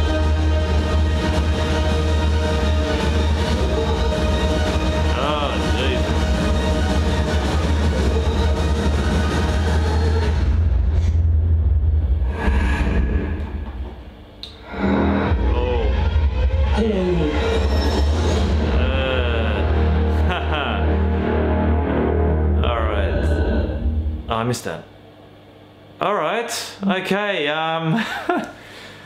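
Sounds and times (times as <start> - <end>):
horror trailer music: 0.0 - 24.3
heavy low bass: 0.0 - 24.4.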